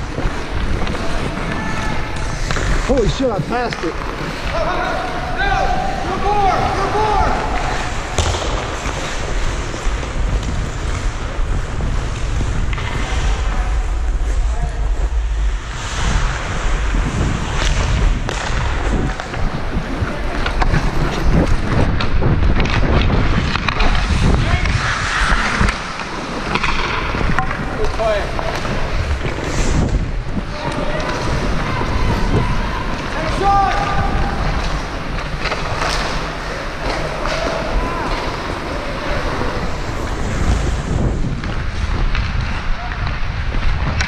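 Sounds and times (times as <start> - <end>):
hockey sticks clacking: 0.0 - 14.5, 16.0 - 44.0
skate blades scraping ice: 0.0 - 44.0
wind rumble on microphone: 4.5 - 36.8, 37.5 - 44.0.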